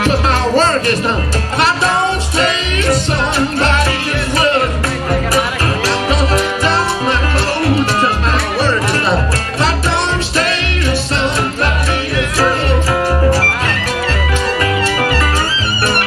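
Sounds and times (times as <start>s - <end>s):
blues band playing: 0.0s - 16.0s
double bass plucking: 0.0s - 16.0s
electric guitar: 0.0s - 16.0s
amplified harmonica: 1.2s - 16.0s.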